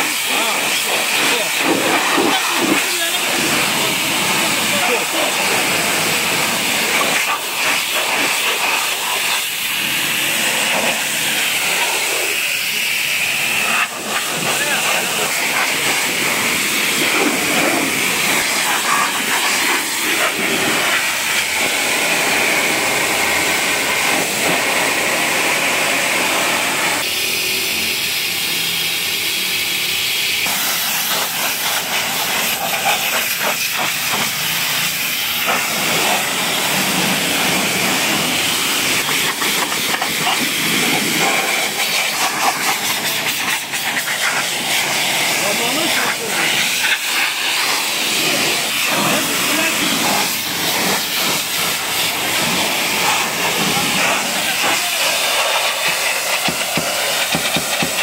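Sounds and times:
pressure washer jet hissing: 0:00.0 - 0:58.0.

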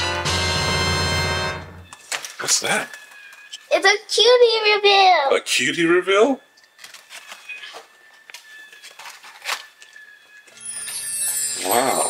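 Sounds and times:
packaging crackle: 0:02.0 - 0:03.7, 0:06.6 - 0:11.0
packaging crinkling and rustling: 0:02.0 - 0:03.7, 0:06.6 - 0:10.9.

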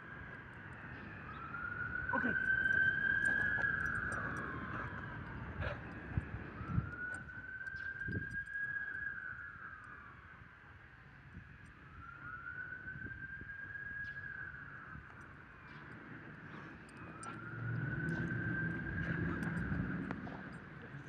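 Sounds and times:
emergency siren wailing: 0:00.0 - 0:21.0.

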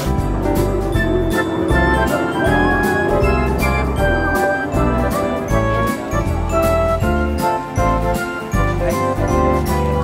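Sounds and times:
background music with chimes: 0:00.0 - 0:10.0.

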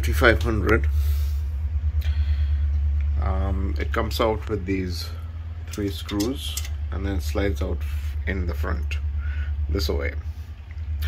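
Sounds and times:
low hum of a storage device: 0:00.0 - 0:11.0.

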